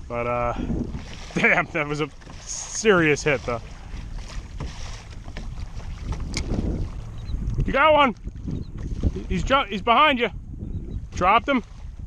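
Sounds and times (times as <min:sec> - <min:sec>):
water washing against hull: 0:00.0 - 0:10.3, 0:11.0 - 0:12.0
wind on microphone: 0:00.0 - 0:12.0.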